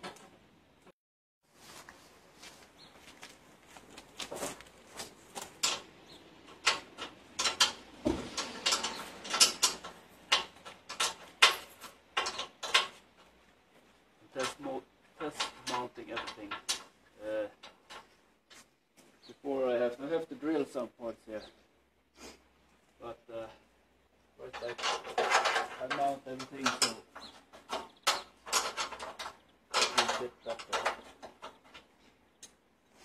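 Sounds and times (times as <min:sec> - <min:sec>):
metal tow bar clanking: 0:06.5 - 0:13.0, 0:24.5 - 0:31.9.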